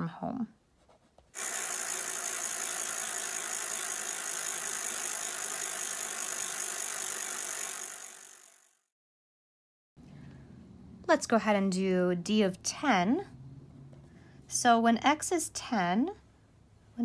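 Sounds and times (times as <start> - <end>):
bicycle freewheel ratcheting: 1.4 - 8.9.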